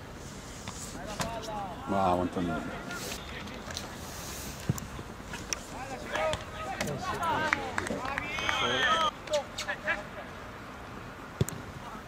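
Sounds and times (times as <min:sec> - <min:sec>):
outdoor background noise: 0:00.0 - 0:12.0
football players shouting: 0:05.8 - 0:09.1.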